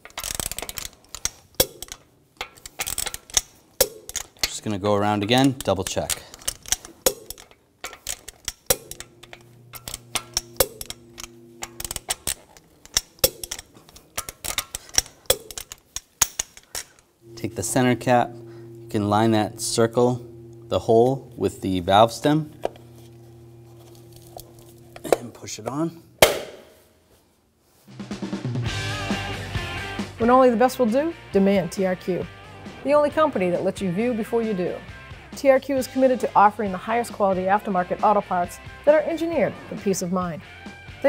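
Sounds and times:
torque wrench clicking: 0:00.0 - 0:25.2
music with drums and guitar: 0:27.9 - 0:31.5, 0:32.2 - 0:38.8.

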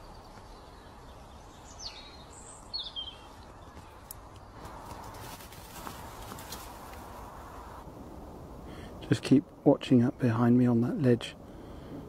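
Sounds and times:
small bird chirping: 0:00.0 - 0:04.6
outdoor background hiss: 0:00.0 - 0:12.0.

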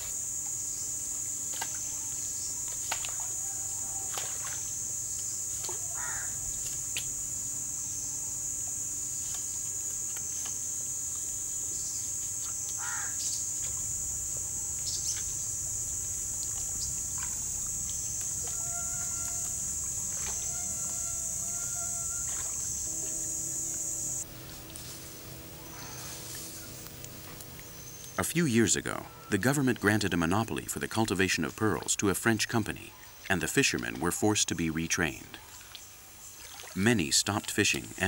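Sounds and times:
high-pitched insect drone: 0:00.0 - 0:38.0.

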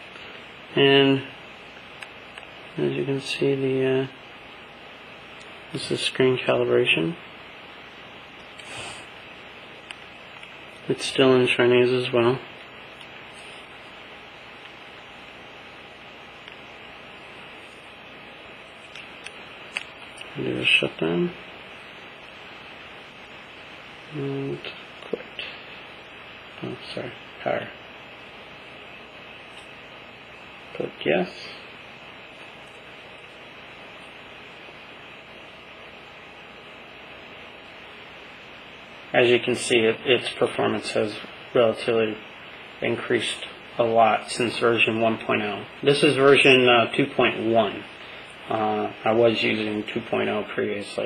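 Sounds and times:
steady background hiss: 0:00.0 - 0:51.0.

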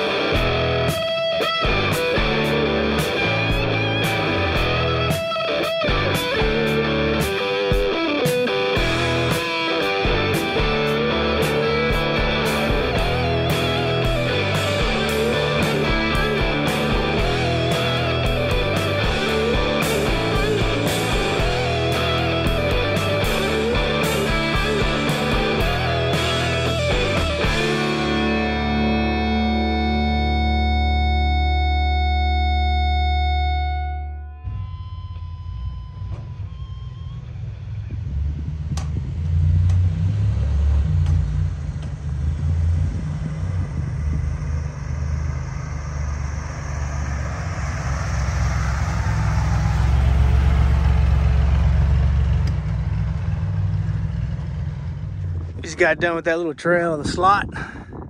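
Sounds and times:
guitar rock music: 0:00.0 - 0:36.8, 0:54.6 - 0:57.4
vehicle engine driving: 0:00.0 - 0:58.0
wind noise: 0:36.5 - 0:51.9, 0:55.0 - 0:58.0.

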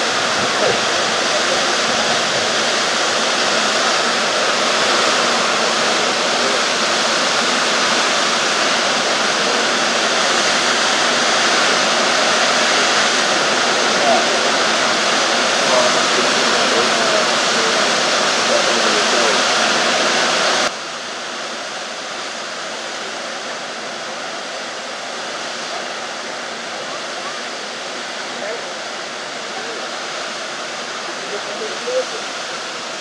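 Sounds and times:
waterfall rushing: 0:00.0 - 0:33.0.

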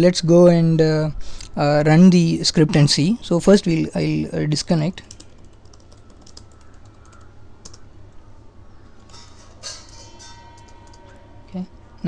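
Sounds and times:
faint steady hum: 0:00.0 - 0:12.0
keyboard typing: 0:05.0 - 0:07.9.

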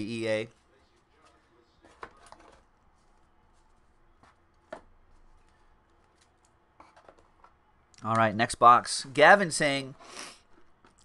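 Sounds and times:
trading cards rustling and clicking: 0:00.6 - 0:07.6.

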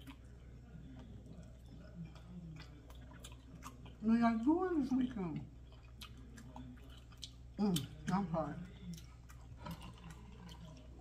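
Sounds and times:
chewing food: 0:00.0 - 0:11.0
low steady hum: 0:00.0 - 0:11.0.

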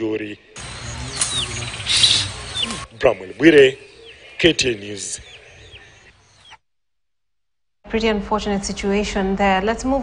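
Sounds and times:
birds chirping: 0:00.0 - 0:06.6.

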